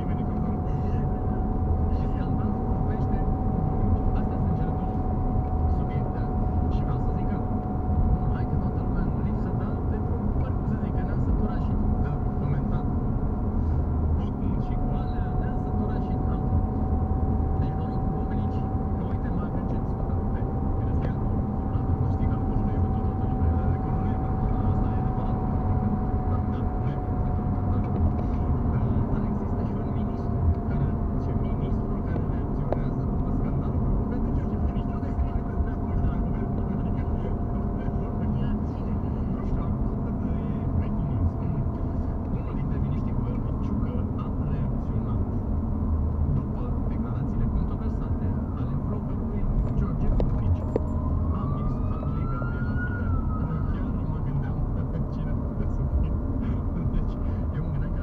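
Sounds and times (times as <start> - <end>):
car tyres and engine rumble: 0.0 - 58.0
faint whine: 0.0 - 58.0.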